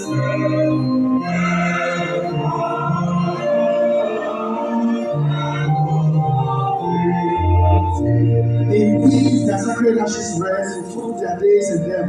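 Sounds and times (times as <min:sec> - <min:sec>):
mixed choir singing a hymn: 0:00.0 - 0:09.9.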